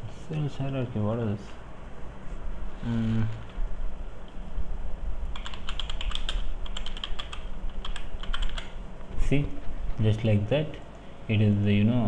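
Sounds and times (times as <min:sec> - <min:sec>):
low steady hum: 0:00.0 - 0:12.0
computer keyboard typing: 0:05.3 - 0:08.8.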